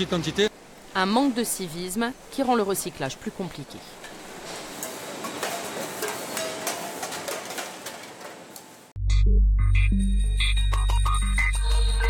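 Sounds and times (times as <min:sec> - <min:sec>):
cans and bottles clattering: 0:04.0 - 0:08.7.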